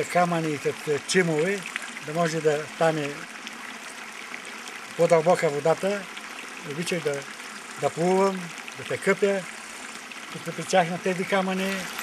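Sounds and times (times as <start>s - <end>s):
mountain stream rushing: 0.0s - 12.0s.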